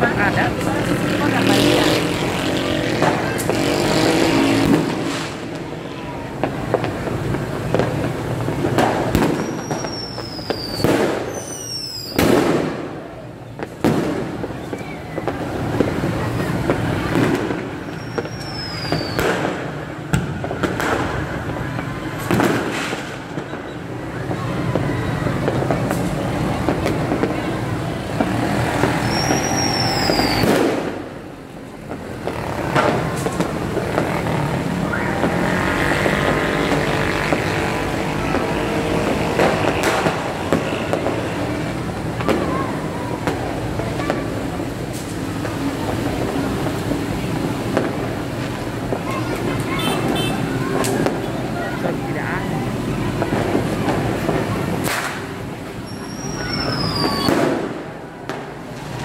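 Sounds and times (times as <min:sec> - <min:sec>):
heavy rain: 0:00.0 - 0:10.1, 0:14.2 - 0:18.0, 0:18.6 - 0:59.0
motorbike and car traffic: 0:00.0 - 0:59.0
people's voices: 0:00.0 - 0:59.0
sharp pops: 0:53.1 - 0:55.4.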